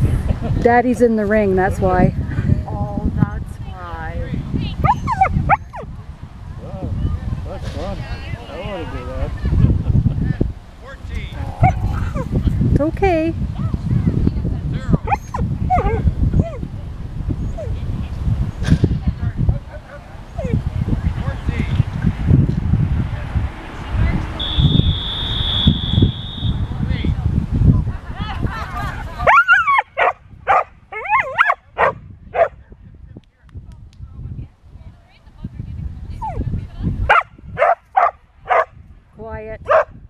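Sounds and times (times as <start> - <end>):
dog barking in high yips: 4.8 - 5.8, 29.3 - 32.6, 37.1 - 38.7, 39.7 - 39.9.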